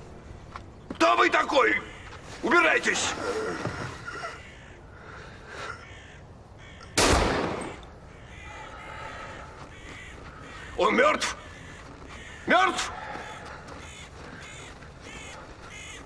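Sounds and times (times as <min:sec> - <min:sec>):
crow cawing: 0:03.7 - 0:07.0, 0:07.7 - 0:16.0
pistol shot: 0:07.0 - 0:07.8.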